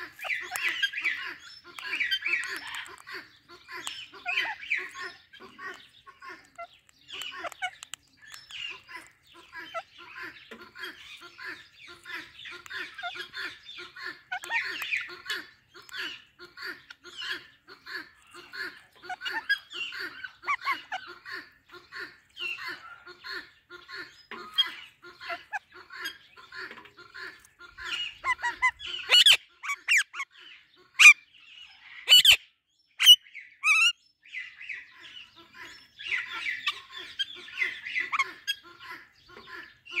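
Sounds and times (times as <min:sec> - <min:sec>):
parakeet squawks: 0:00.0 - 0:30.4, 0:31.0 - 0:31.2, 0:31.8 - 0:32.4, 0:33.0 - 0:34.0, 0:35.4 - 0:40.0
parakeets chattering: 0:00.0 - 0:40.0.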